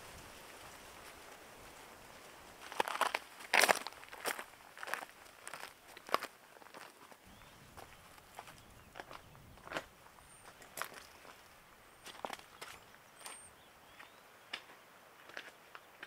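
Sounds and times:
footsteps on loose rock and leaves: 0:00.0 - 0:15.6.

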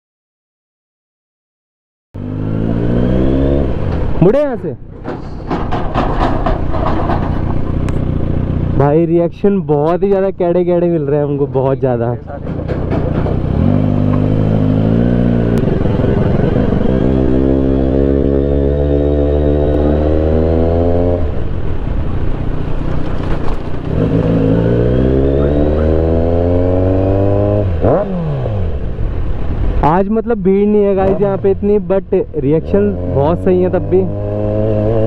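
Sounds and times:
motorcycle engine revving: 0:02.2 - 0:04.2, 0:05.7 - 0:09.2, 0:12.4 - 0:29.3, 0:32.5 - 0:35.0.

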